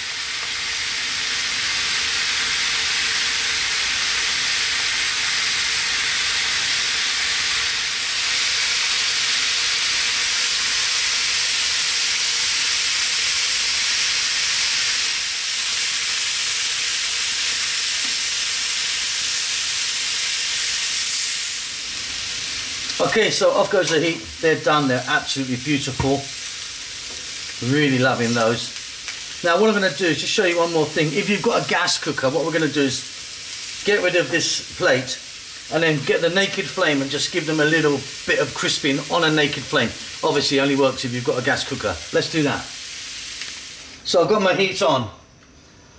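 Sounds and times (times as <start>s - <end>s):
kebabs sizzling on a griddle: 0.0s - 44.8s.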